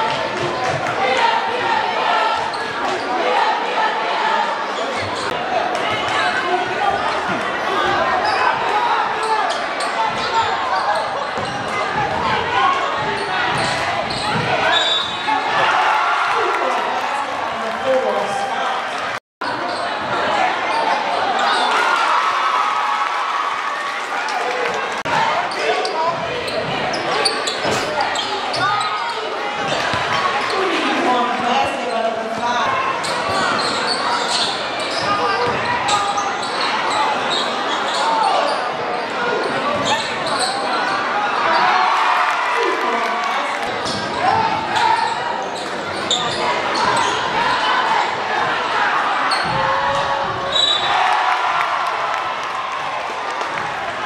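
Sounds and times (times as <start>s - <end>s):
crowd talking and shouting: 0.0s - 54.0s.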